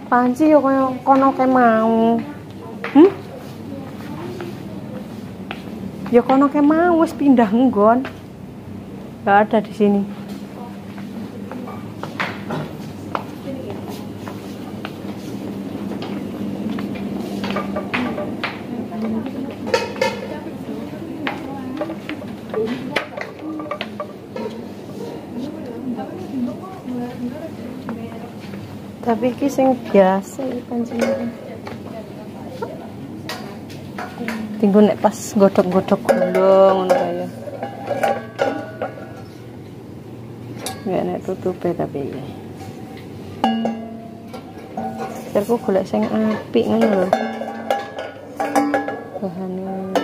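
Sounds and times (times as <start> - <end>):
metal cookware clinking: 19.6 - 20.4, 31.0 - 31.5, 35.2 - 39.3, 40.6 - 41.1, 43.4 - 49.3.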